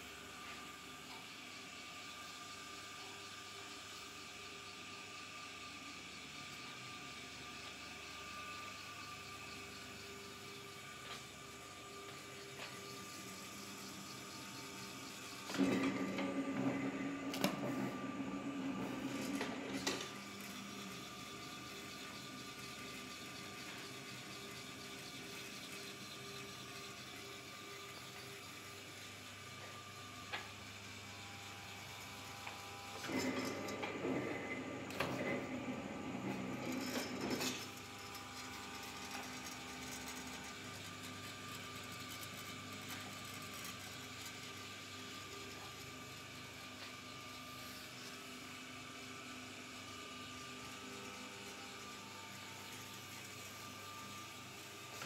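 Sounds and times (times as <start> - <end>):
low mains hum: 0.0 - 55.0
electric motor running: 3.4 - 55.0.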